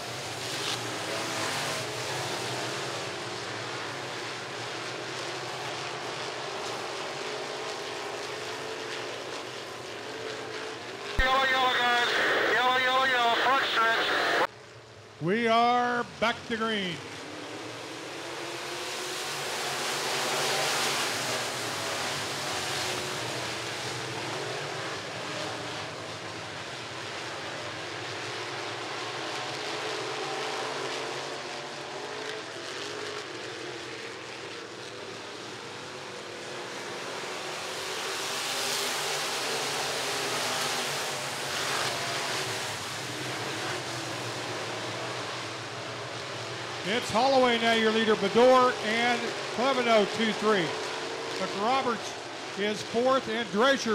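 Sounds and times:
race car engines passing: 0:00.0 - 0:14.5, 0:16.1 - 0:53.9.

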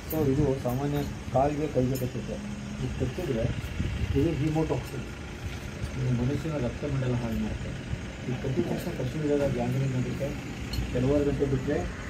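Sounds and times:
low steady rumble: 0:00.0 - 0:12.0
men talking: 0:00.0 - 0:12.0.

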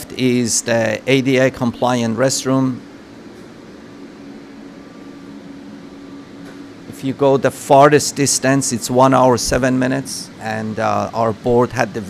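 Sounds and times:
ventilation air hum and hiss: 0:00.0 - 0:12.0.

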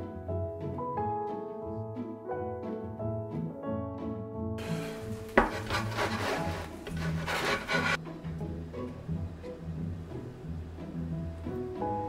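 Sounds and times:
soft background music: 0:00.0 - 0:12.0
pizza scraping on wooden board: 0:04.6 - 0:08.0.

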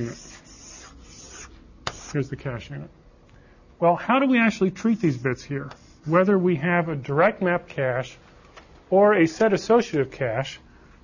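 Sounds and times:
writing strokes on a board: 0:00.0 - 0:02.2.

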